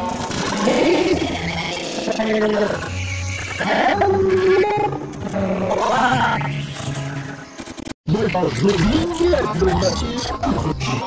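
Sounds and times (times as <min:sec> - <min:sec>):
warped voice-like and musical sounds: 0:00.0 - 0:11.0.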